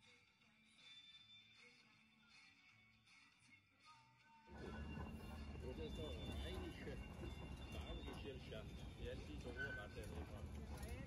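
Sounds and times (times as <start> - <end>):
people talking: 4.6 - 11.0.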